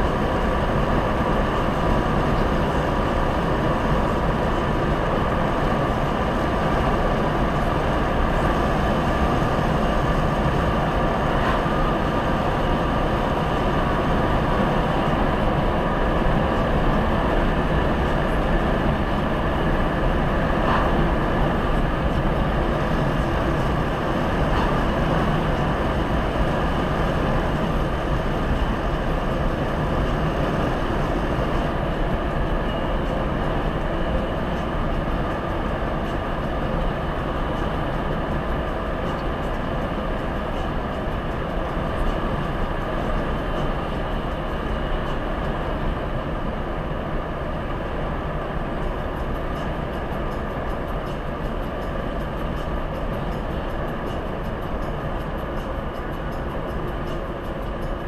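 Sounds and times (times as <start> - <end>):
engine drone: 0.0 - 58.0.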